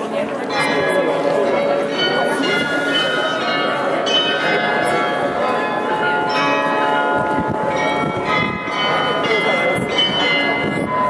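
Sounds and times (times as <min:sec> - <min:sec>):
crowd murmuring: 0:00.0 - 0:11.0
tower bells chiming a tune: 0:00.2 - 0:11.0.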